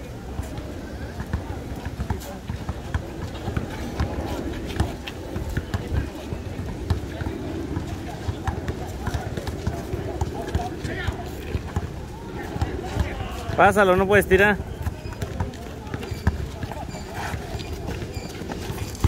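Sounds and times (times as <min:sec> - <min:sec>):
players' voices: 0:00.0 - 0:19.0
basketball bouncing on asphalt: 0:00.4 - 0:19.0.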